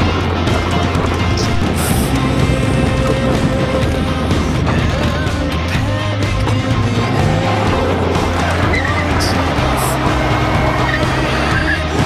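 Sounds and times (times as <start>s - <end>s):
car driven hard on gravel: 0.0s - 12.0s
music soundtrack: 0.0s - 12.0s
tyres skidding: 0.0s - 12.0s.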